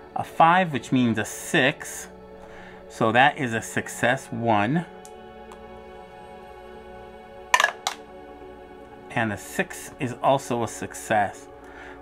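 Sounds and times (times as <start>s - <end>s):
background music: 0.0s - 12.0s
dice clattering in tray: 7.6s - 8.0s.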